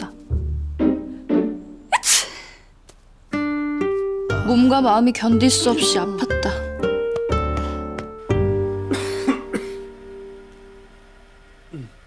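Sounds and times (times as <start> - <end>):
plucked-string background music: 0.0 - 1.9, 3.2 - 11.7
man coughing: 8.9 - 9.8.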